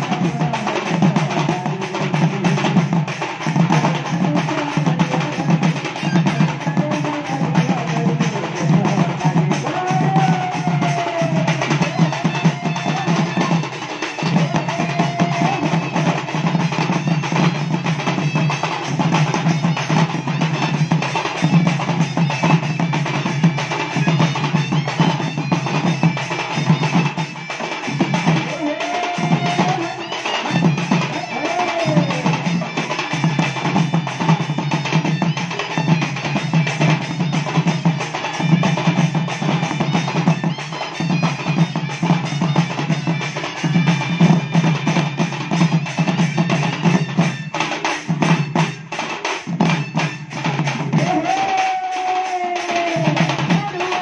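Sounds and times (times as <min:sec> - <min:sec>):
drums in fast rhythm: 0:00.0 - 0:54.0.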